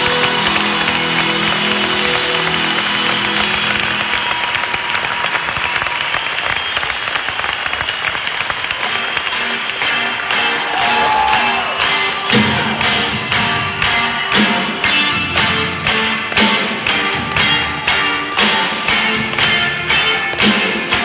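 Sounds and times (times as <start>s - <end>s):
crowd applauding and cheering: 0.0s - 21.0s
live band playing: 8.7s - 21.0s.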